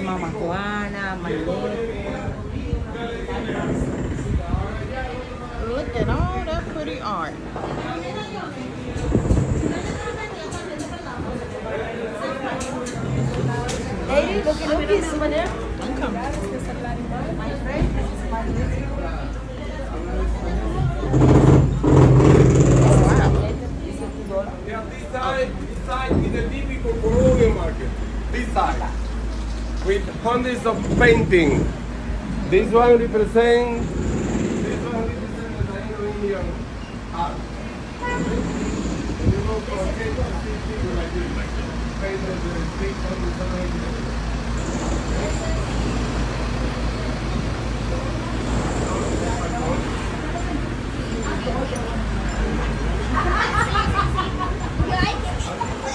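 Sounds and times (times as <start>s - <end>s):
faint voices talking: 0.0s - 55.9s.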